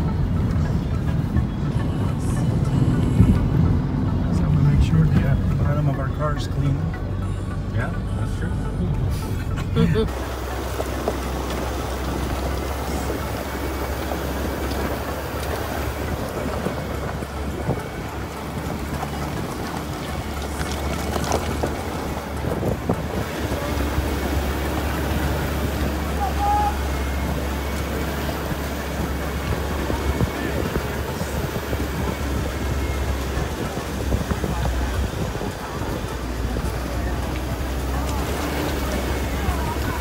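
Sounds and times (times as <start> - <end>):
road and engine rumble: 0.0 - 40.0
wind buffeting microphone: 8.9 - 40.0.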